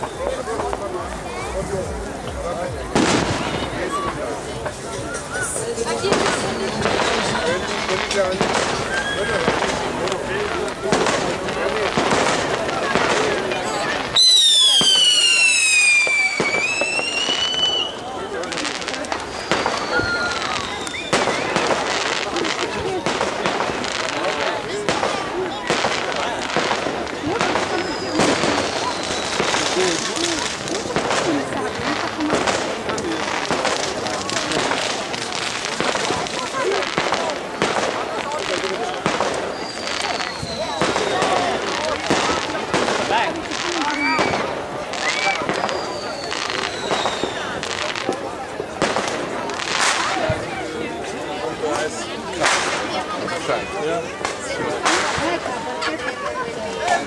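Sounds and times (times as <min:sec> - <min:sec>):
fireworks bangs and crackling: 0:00.0 - 0:57.0
falling firework whistle: 0:08.5 - 0:09.8, 0:13.1 - 0:23.4, 0:26.0 - 0:31.3, 0:38.4 - 0:43.0, 0:43.6 - 0:48.2.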